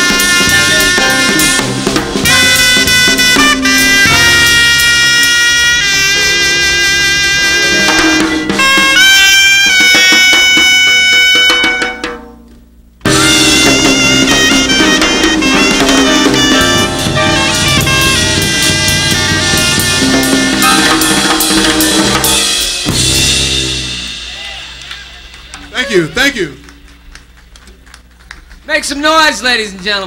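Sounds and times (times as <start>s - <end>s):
drum kit: 0.0s - 29.4s
soprano saxophone sliding notes: 2.3s - 11.8s, 13.1s - 21.2s.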